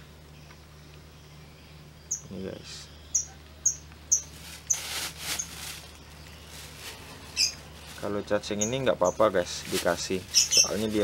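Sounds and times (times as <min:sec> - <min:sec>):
bird chirping: 0:00.3 - 0:11.0
crickets rustling in plastic basin: 0:04.1 - 0:11.0.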